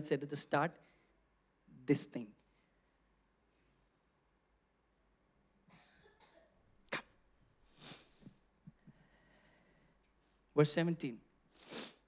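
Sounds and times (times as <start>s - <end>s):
faint breath: 7.7s - 10.0s.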